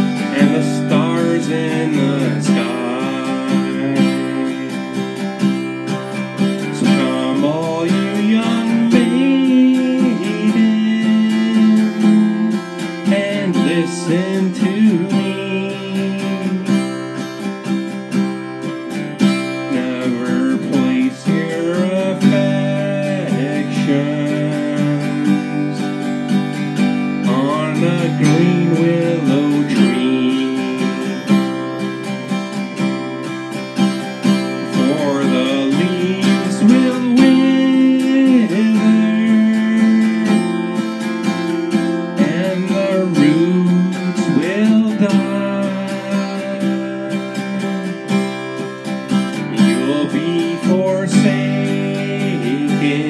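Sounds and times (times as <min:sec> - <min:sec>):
acoustic guitar strumming: 0:00.0 - 0:53.0
bending guitar melody: 0:00.0 - 0:53.0.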